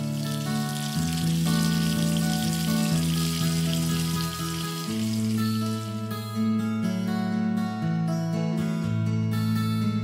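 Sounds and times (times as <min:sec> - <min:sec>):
water running into bathtub: 0:00.0 - 0:05.8.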